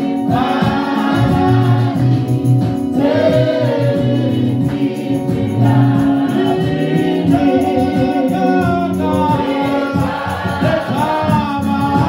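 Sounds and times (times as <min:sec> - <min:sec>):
group gospel singing: 0:00.0 - 0:12.0
instrumental accompaniment: 0:00.0 - 0:12.0
low bass line: 0:01.2 - 0:12.0.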